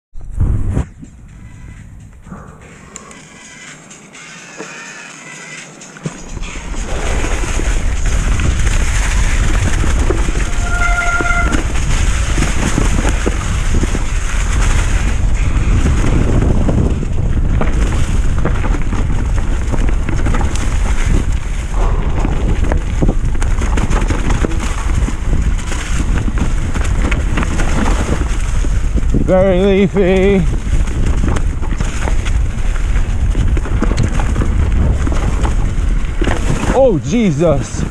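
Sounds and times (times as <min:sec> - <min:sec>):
bike tyres rattling over dirt: 0:03.8 - 0:37.9
wind buffeting microphone: 0:06.2 - 0:37.9
brief high squeal: 0:10.5 - 0:11.6.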